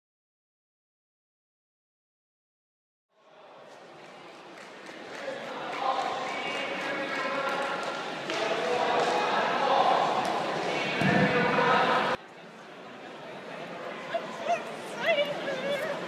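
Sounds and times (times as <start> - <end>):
voices echoing in a gym: 3.2 - 16.0.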